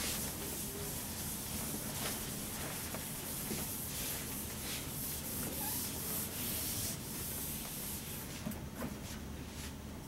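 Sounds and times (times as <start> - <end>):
eraser wiping whiteboard: 0.0 - 8.5.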